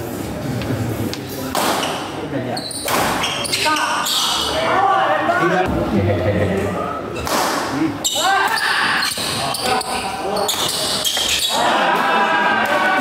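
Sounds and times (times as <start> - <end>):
shoes squeaking on floor: 1.8 - 4.6, 8.0 - 11.6.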